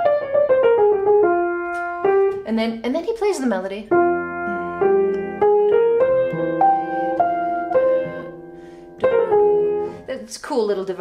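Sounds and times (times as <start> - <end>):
jazz piano line: 0.0 - 11.0.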